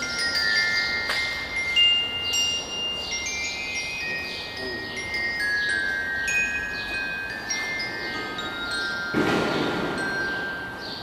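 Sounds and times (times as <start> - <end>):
bell-like chime notes: 0.0 - 11.0.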